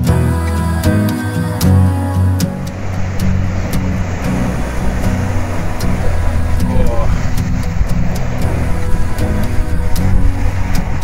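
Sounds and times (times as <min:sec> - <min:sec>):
soft background music: 0:00.0 - 0:11.0
waves breaking on rocky shore: 0:00.4 - 0:11.0.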